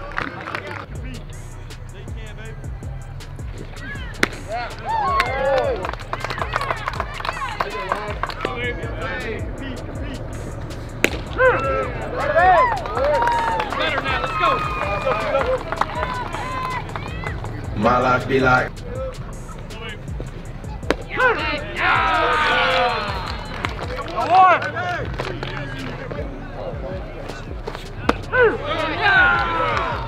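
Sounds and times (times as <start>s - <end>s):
music with steady low bass: 0.8s - 30.0s
sharp cracks: 3.7s - 7.0s, 10.7s - 11.6s.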